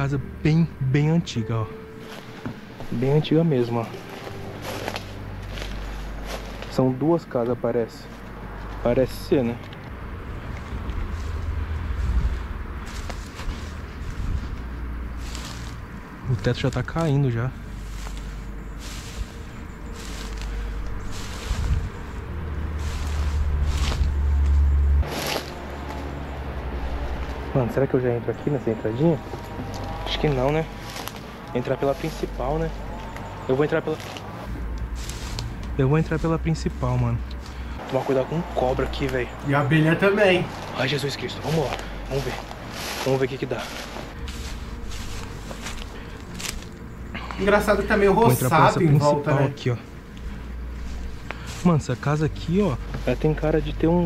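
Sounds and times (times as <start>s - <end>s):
low wind rumble: 0.0s - 54.0s
leaves and stems rustling: 1.7s - 54.0s
brushing through undergrowth: 1.9s - 54.0s
footsteps through dry grass: 1.9s - 54.0s
wind buffeting microphone: 10.7s - 14.8s, 21.0s - 24.2s.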